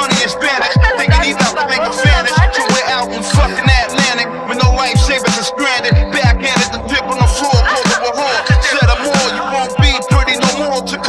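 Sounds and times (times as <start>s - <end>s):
hip hop beat: 0.0s - 11.0s
rapped vocal: 0.0s - 11.0s.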